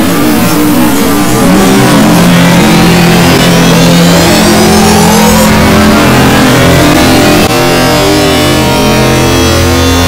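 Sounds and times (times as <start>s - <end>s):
distorted electronic noise: 0.0s - 10.0s
low hum: 0.0s - 10.0s.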